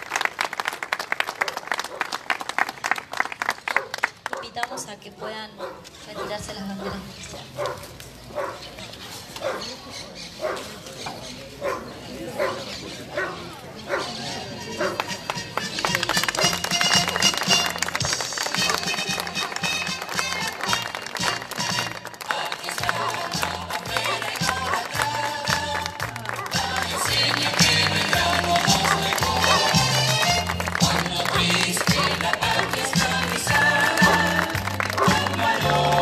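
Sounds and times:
electronic keyboard music over speakers: 22.8 - 36.0.

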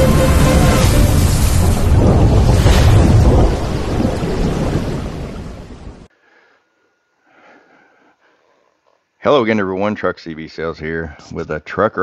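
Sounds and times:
loud thunder-like rumbling: 0.0 - 6.1.

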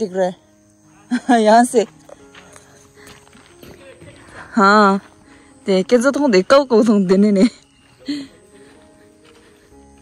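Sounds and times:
footsteps on dirt road: 1.5 - 10.0.

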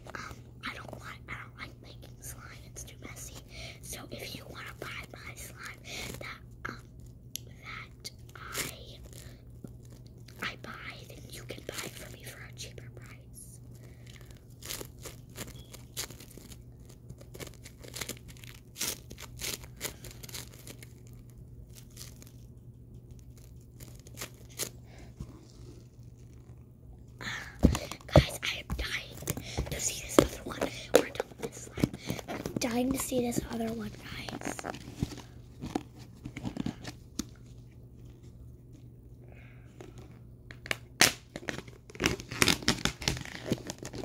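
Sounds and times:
slime crackling and popping: 13.9 - 24.8, 40.5 - 44.0
plastic container handling: 27.6 - 37.4.

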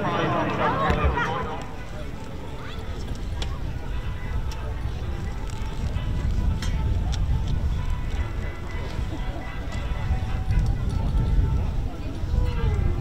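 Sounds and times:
wind buffeting microphone: 0.9 - 13.0.

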